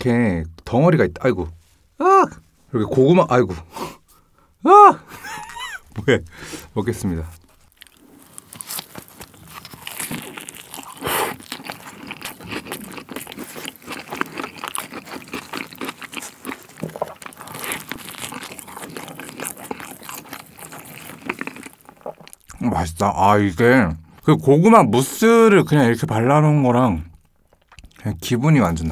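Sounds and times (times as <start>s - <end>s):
crunchy chewing: 7.3s - 22.6s, 27.1s - 28.0s.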